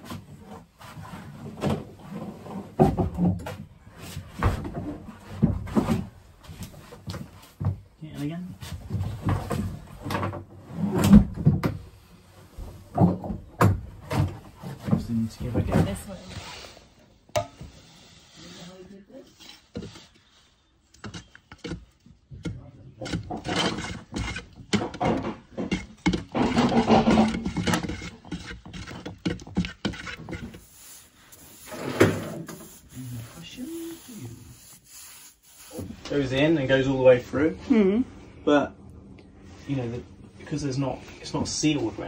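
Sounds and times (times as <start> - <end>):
stick scraping metal paint tin: 22.9 - 36.4.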